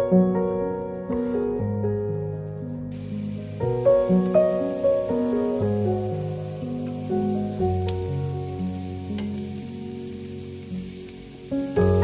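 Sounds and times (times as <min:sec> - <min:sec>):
soft background music: 0:00.0 - 0:12.0
onion and garlic sizzling in oil: 0:02.9 - 0:12.0.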